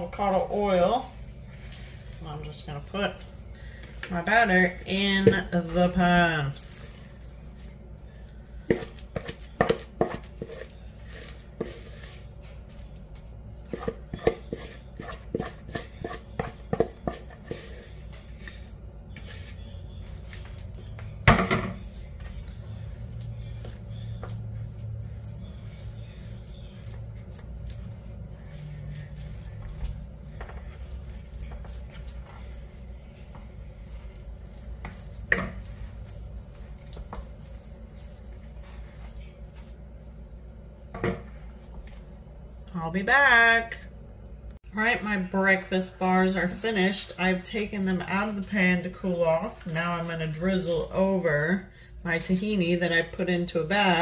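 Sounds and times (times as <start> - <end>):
steady low hum: 0.0 - 54.0
wooden spoon scraping a bowl: 0.1 - 2.3, 3.1 - 40.2.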